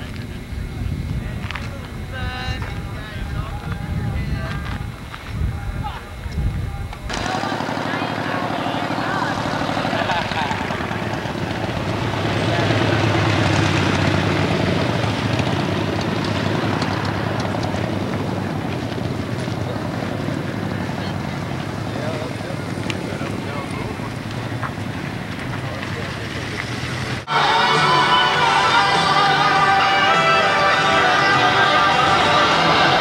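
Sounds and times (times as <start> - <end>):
wind buffeting microphone: 0.0 - 7.2
crowd voices: 0.0 - 33.0
motorcycle engine throbbing: 0.0 - 33.0.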